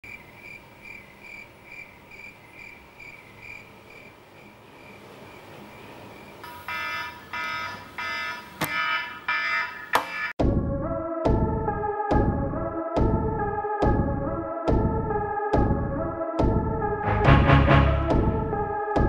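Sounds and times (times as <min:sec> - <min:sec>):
alarm clock beeping: 0:06.4 - 0:10.4
synthesizer chord stabs: 0:10.4 - 0:19.0.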